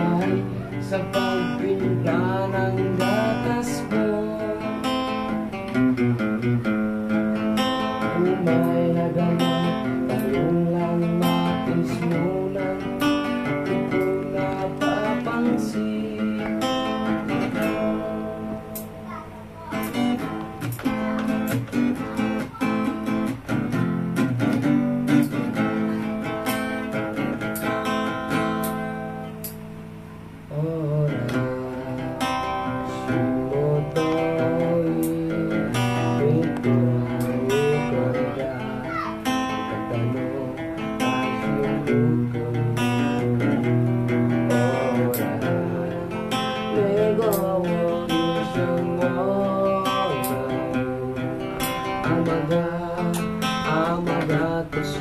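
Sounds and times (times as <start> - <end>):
acoustic guitar: 0.0 - 55.0.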